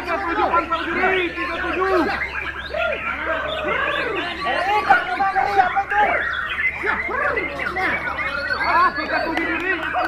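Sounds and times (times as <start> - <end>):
birds singing in chorus: 0.0 - 10.0.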